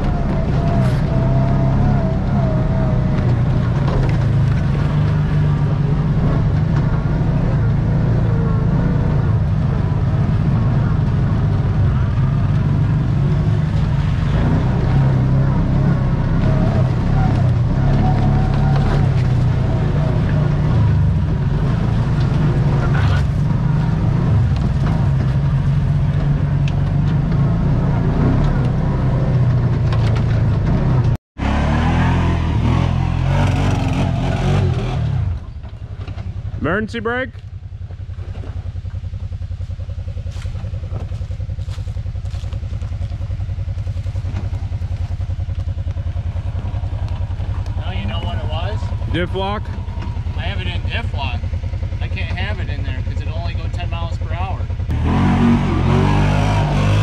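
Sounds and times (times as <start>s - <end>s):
engine running under load: 0.0s - 57.0s.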